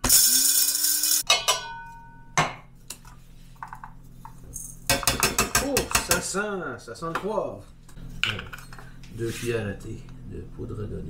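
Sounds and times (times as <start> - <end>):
electric spice grinder grinding: 0.0 - 1.2.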